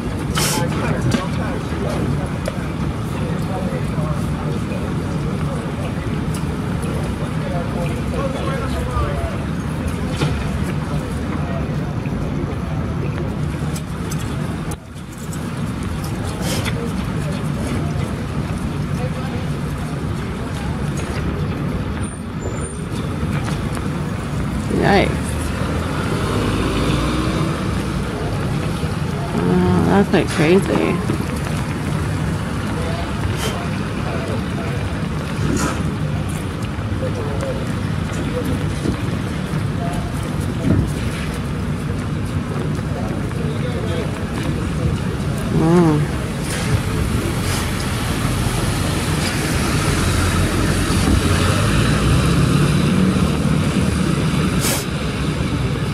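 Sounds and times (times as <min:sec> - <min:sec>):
distant voices: 0:00.0 - 0:55.9
low traffic rumble: 0:00.0 - 0:55.9
car driving past on wet road: 0:25.3 - 0:28.0, 0:46.8 - 0:55.5
indistinct voices: 0:27.5 - 0:31.4, 0:44.7 - 0:47.0.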